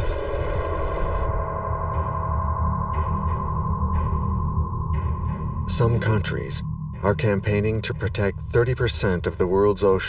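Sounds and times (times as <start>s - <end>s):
low synthesizer drone: 0.0s - 10.0s
man narrating: 5.7s - 10.0s.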